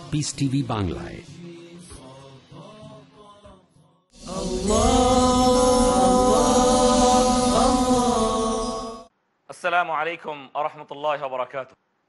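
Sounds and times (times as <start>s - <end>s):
chanted voices holding a chord: 4.2s - 9.1s
shimmering high synth layer: 4.2s - 9.1s.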